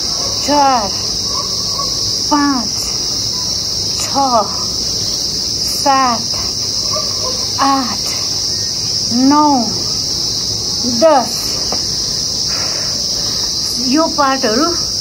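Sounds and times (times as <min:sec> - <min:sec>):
insects droning in trees: 0:00.0 - 0:15.0.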